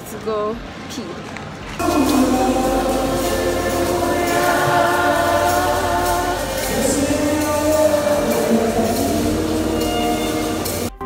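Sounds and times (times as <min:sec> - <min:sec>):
choir singing gospel music: 0:01.8 - 0:10.9.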